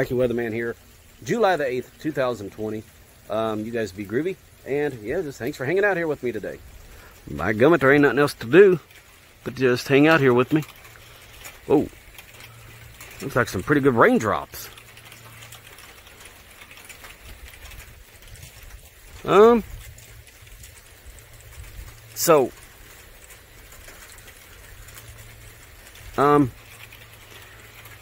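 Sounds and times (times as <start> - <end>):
light rain falling: 0.0 - 28.0
low steady rumble: 0.0 - 28.0.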